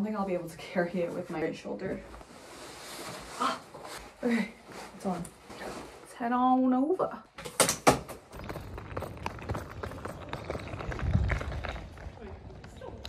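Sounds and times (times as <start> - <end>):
suitcase wheels rattling on paving: 8.0 - 13.0
footsteps on paving stones: 8.4 - 13.0.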